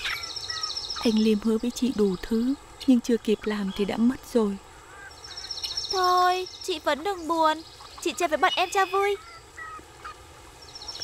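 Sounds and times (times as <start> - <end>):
birds calling: 0.0 - 11.0.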